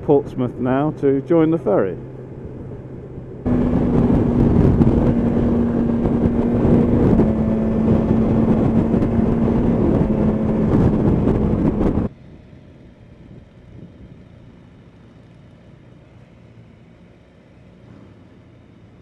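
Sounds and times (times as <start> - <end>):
motorcycle engine drone: 0.0 - 19.0
wind and road rush: 0.0 - 19.0.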